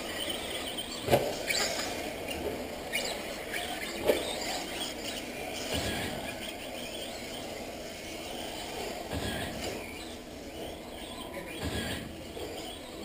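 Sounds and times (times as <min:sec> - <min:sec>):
radio-controlled cars racing: 0:00.0 - 0:13.0.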